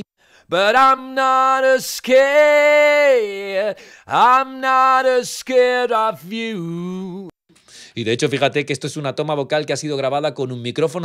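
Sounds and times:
quick breath: 0:00.2 - 0:00.5, 0:03.8 - 0:04.1, 0:07.5 - 0:08.0.

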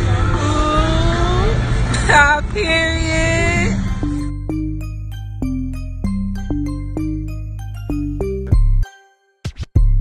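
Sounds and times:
city traffic rumble: 0:00.0 - 0:08.3.

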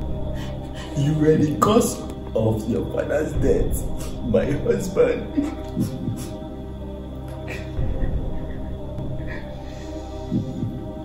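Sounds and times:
dark background score drone: 0:00.0 - 0:11.0
heartbeat-like double thump: 0:10.3 - 0:10.9.

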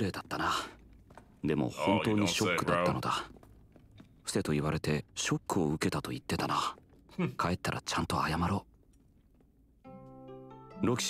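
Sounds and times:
character speaking dialogue: 0:01.4 - 0:03.3.

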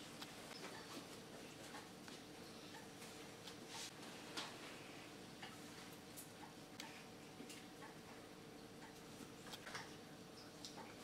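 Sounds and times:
faint room hum: 0:00.0 - 0:11.0
soft ticks: 0:08.8 - 0:09.1.

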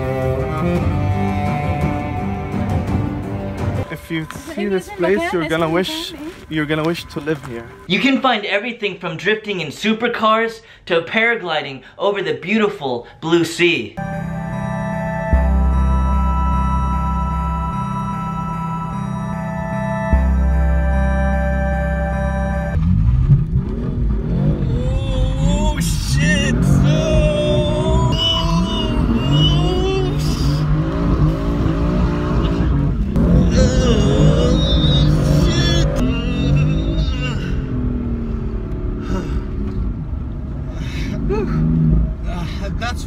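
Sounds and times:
background music: 0:00.0 - 0:08.2, 0:14.0 - 0:23.1
car engine revving: 0:14.0 - 0:43.0
tyres squealing: 0:24.6 - 0:37.7.

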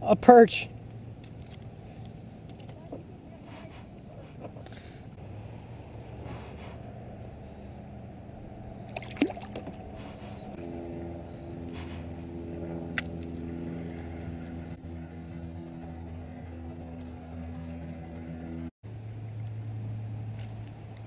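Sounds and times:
low drone of held tones: 0:04.1 - 0:21.0
fish splashing into water: 0:08.9 - 0:09.8.

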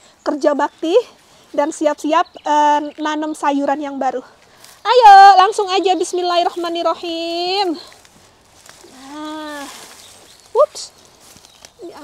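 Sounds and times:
roots and soil tearing loose: 0:07.8 - 0:12.0.

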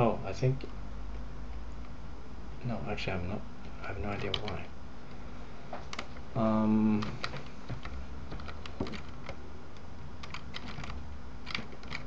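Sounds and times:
steady low hum: 0:00.0 - 0:12.0
keyboard keys clicking: 0:04.0 - 0:04.7, 0:06.9 - 0:12.0.

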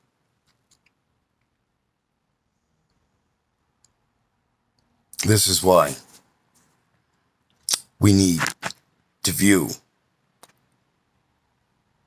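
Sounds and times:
man speaking: 0:05.2 - 0:06.2, 0:07.7 - 0:09.9.

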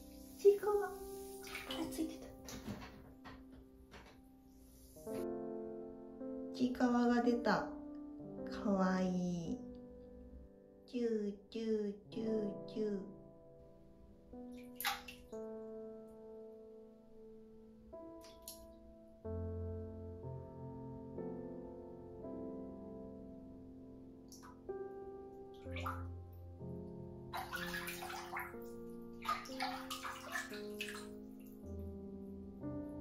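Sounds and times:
soft background music: 0:00.0 - 0:33.0
bathwater sloshing in a bathtub: 0:00.3 - 0:03.3, 0:14.6 - 0:15.4, 0:25.6 - 0:26.2, 0:27.3 - 0:31.6.

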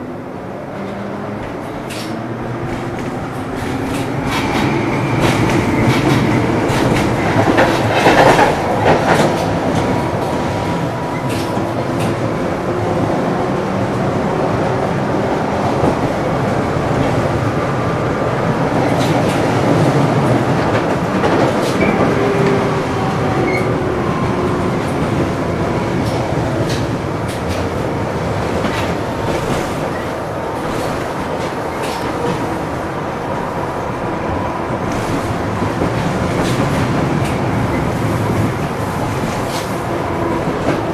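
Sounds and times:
tram wheels rumbling on rails: 0:00.0 - 0:40.9.

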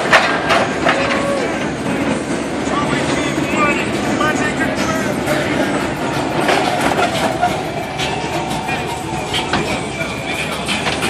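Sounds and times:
car engines idling: 0:00.0 - 0:11.0.

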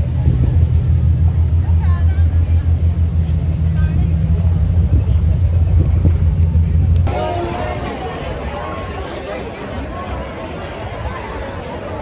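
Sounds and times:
loud low rumble: 0:00.0 - 0:09.1.

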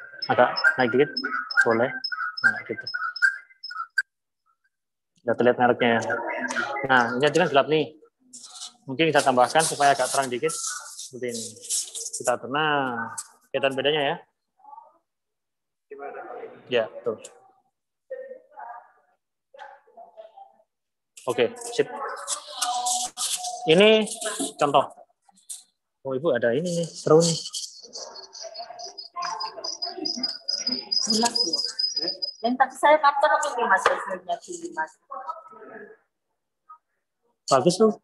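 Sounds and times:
whistle-like tones: 0:00.0 - 0:04.2, 0:08.4 - 0:13.5, 0:22.0 - 0:24.7, 0:26.6 - 0:32.5.

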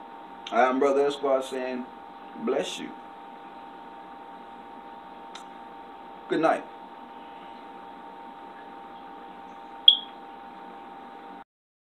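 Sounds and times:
steady background hum: 0:00.0 - 0:11.4
short high electronic beep: 0:09.9 - 0:10.1.

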